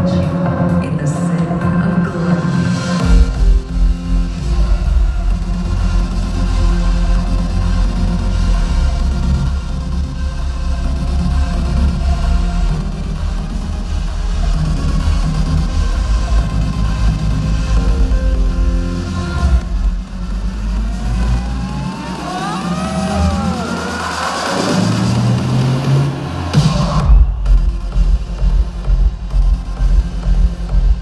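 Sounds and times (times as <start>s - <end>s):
gliding synth tones: 0.0s - 27.4s
electronic dance music: 0.0s - 31.0s
rising noise sweep: 18.9s - 27.5s.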